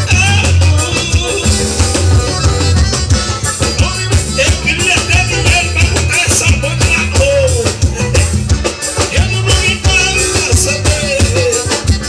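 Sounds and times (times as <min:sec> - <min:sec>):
accordion: 0:00.0 - 0:12.0
drum kit dance beat: 0:00.0 - 0:12.0
electric bass: 0:00.0 - 0:12.0
guitar: 0:00.0 - 0:12.0.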